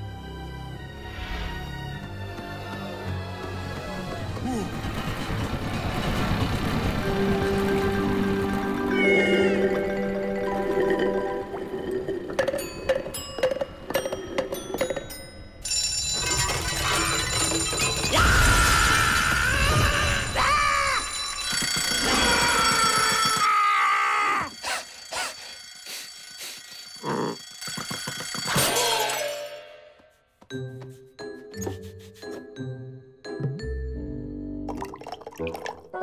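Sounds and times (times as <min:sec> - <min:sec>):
alarm clock bells ringing: 0:12.6 - 0:18.4, 0:20.6 - 0:23.5, 0:24.3 - 0:29.1.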